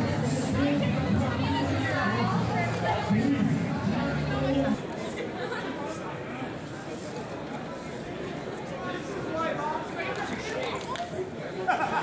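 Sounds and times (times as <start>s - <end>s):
crowd chatter in a large hall: 0.0s - 12.0s.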